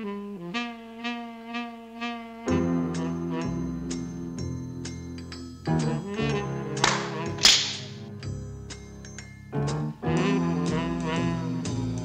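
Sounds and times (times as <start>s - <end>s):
jazzy orchestral score: 2.3s - 4.4s, 5.7s - 8.2s, 9.6s - 12.0s
cartoon mousetrap snapping shut: 6.8s - 8.0s.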